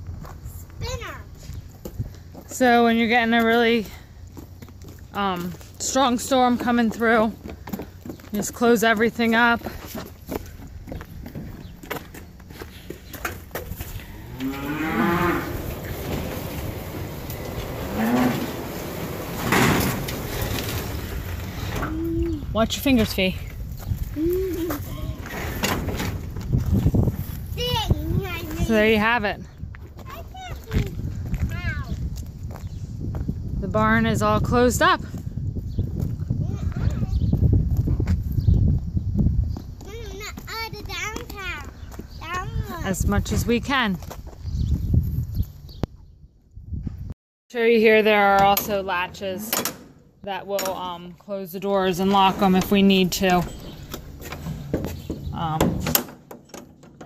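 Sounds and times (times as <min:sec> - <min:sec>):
child talking: 0:00.6 - 0:01.4, 0:24.2 - 0:25.4, 0:27.5 - 0:28.8, 0:30.0 - 0:32.0, 0:36.4 - 0:37.4, 0:39.8 - 0:43.0
low rumbling on microphone: 0:13.6 - 0:39.8
cattle mooing: 0:14.0 - 0:16.0, 0:17.2 - 0:18.8.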